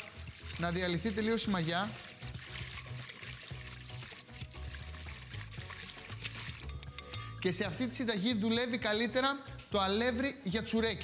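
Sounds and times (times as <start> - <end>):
whisk stirring liquid in glass bowl: 0.0 - 8.5
background music with bass line: 0.0 - 11.0.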